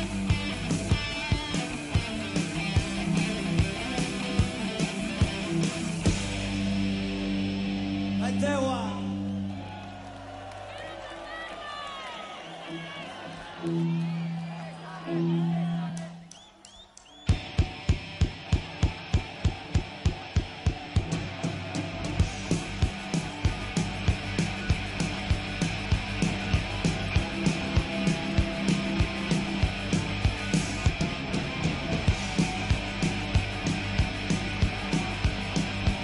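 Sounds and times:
drum kit beat: 0.0 - 7.7, 15.3 - 36.0
rock band playing: 0.0 - 9.8, 12.5 - 16.3, 17.2 - 36.0
crowd whistling and cheering: 7.4 - 36.0.

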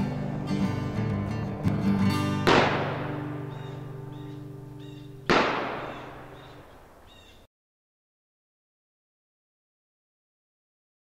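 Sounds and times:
acoustic guitar music: 0.0 - 6.7
shotgun blasts echoing: 2.4 - 4.4, 5.2 - 7.1.

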